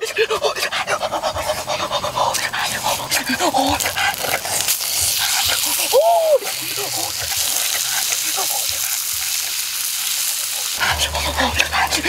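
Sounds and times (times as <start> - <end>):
boy's voiced hoots: 5.7 - 6.5.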